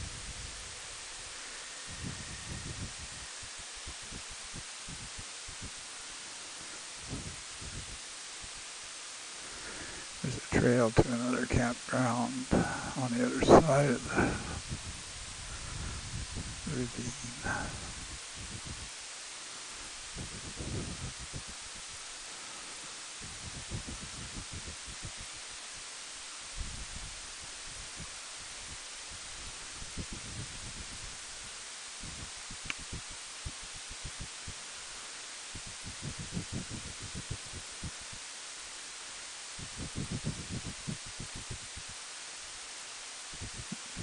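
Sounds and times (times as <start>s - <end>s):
low wind buffets on microphone: 0.0s - 44.0s
wind hiss on microphone: 0.0s - 44.0s.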